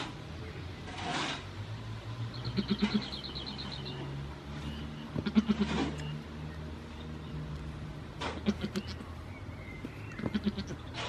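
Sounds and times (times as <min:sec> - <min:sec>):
goat bleating: 0:02.5 - 0:03.1, 0:05.1 - 0:06.0, 0:08.3 - 0:09.0, 0:10.1 - 0:10.9.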